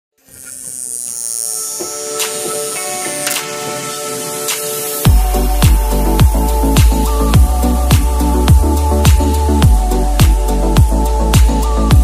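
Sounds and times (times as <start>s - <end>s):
small electric motor buzzing: 0.1s - 11.7s.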